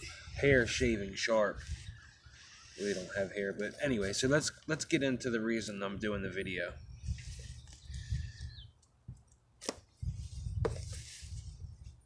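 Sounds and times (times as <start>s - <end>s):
knife cutting tape and cardboard: 9.6s - 9.9s.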